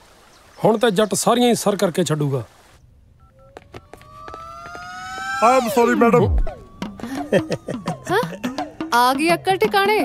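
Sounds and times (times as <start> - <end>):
phone keypad beeps: 3.2 - 4.4
faint rising tone: 3.2 - 8.9.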